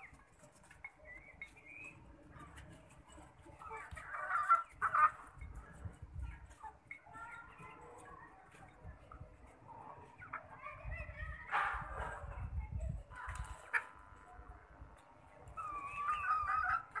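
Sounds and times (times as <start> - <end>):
chickens calling and clucking: 0.0 - 17.0.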